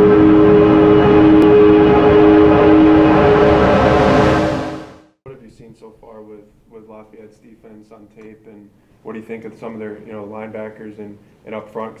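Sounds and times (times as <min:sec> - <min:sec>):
hissy swell: 0:00.0 - 0:05.0
sustained synth chord: 0:00.0 - 0:05.2.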